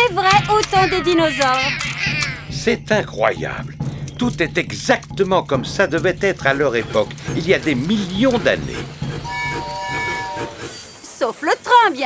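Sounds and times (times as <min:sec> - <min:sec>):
low train rumble: 0:00.0 - 0:11.6
steam train whistle chord: 0:09.2 - 0:10.7.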